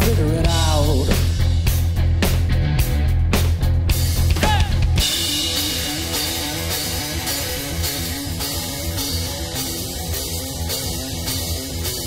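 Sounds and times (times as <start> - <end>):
distorted electric bass riff: 0.0 - 12.0
drum kit beat: 0.0 - 12.0.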